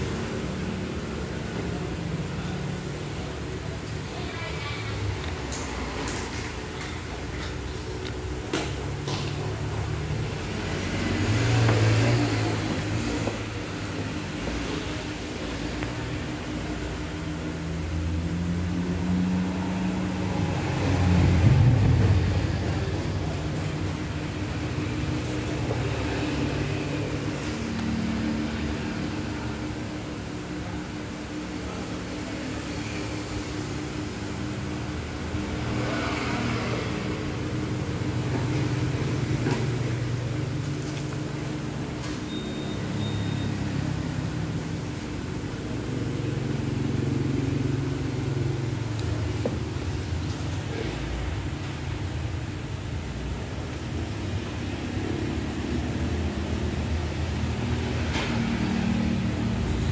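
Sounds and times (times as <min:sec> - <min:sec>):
engines revving: 0:05.0 - 0:30.4, 0:31.0 - 0:42.1.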